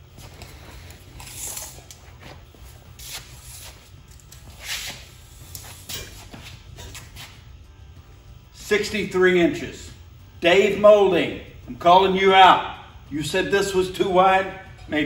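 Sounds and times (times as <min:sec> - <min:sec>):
footsteps: 0:00.0 - 0:07.6
steady low hum: 0:00.0 - 0:15.0.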